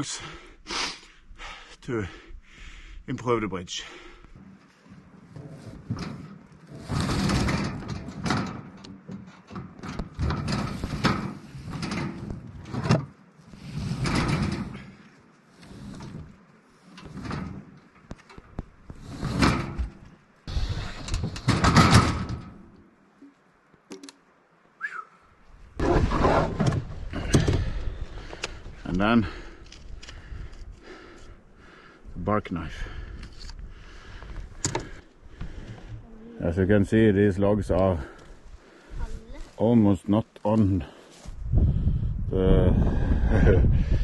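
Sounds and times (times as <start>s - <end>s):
wood scraping along metal: 4.2s - 22.8s, 25.8s - 41.3s.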